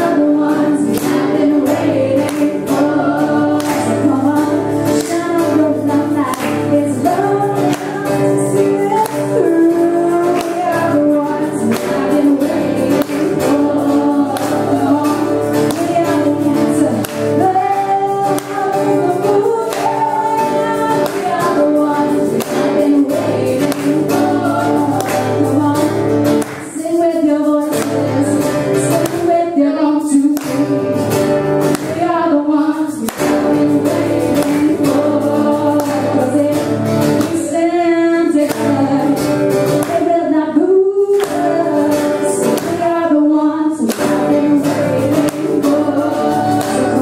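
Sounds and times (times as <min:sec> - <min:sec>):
strummed acoustic guitar: 0:00.0 - 0:47.0
women singing a duet: 0:00.0 - 0:47.0.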